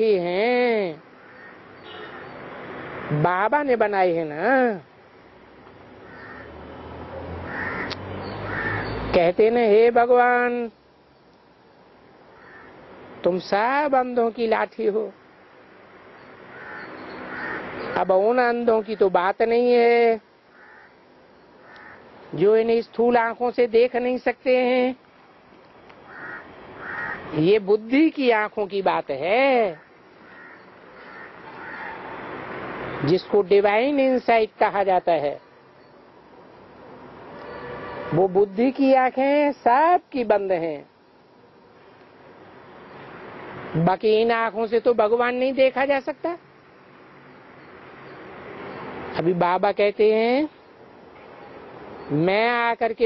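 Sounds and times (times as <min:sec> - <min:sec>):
harsh bird calls: 0:01.2 - 0:02.6, 0:06.0 - 0:06.6, 0:07.4 - 0:09.1, 0:12.3 - 0:12.8, 0:16.2 - 0:19.1, 0:20.5 - 0:22.2, 0:25.9 - 0:27.4, 0:29.7 - 0:32.3.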